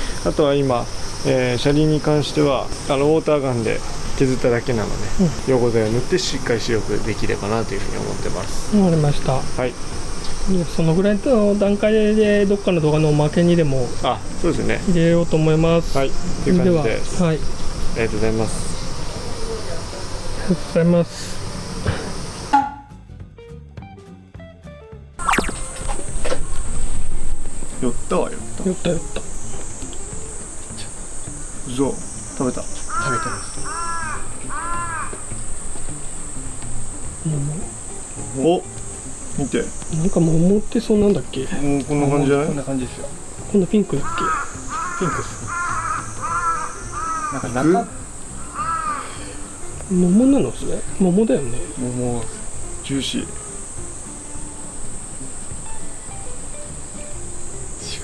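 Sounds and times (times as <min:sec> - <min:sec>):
high-pitched insect drone: 0:00.0 - 0:22.8, 0:25.2 - 0:58.0
steady outdoor hiss: 0:00.0 - 0:23.2, 0:25.2 - 0:58.0
light jingle music: 0:27.3 - 0:33.4, 0:37.2 - 0:44.3, 0:49.1 - 0:55.0
crow cawing: 0:32.7 - 0:36.0, 0:43.9 - 0:49.6.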